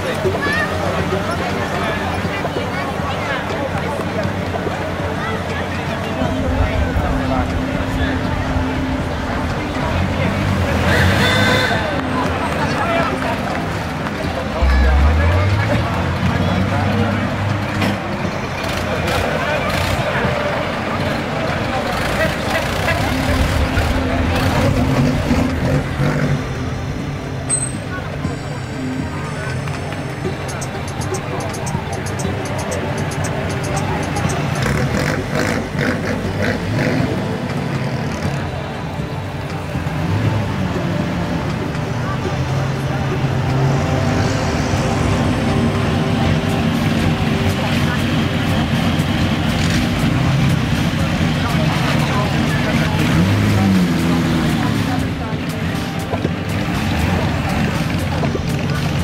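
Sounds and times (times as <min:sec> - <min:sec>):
classic car engines idling: 0:00.0 - 0:59.0
crowd chatter: 0:00.0 - 0:59.0
car engine revving: 0:05.8 - 0:29.6, 0:30.2 - 0:59.0.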